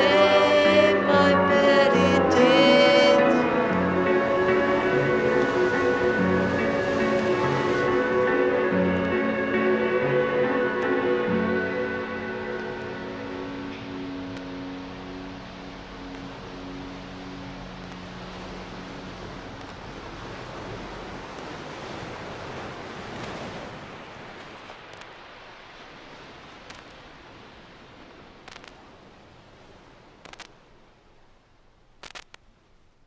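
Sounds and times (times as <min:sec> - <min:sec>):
held music notes: 0:00.0 - 0:21.2
ocean surf rushing: 0:00.0 - 0:31.3
faint clicks: 0:19.6 - 0:19.8, 0:26.6 - 0:27.0, 0:28.4 - 0:28.8, 0:30.2 - 0:30.6, 0:32.0 - 0:32.6.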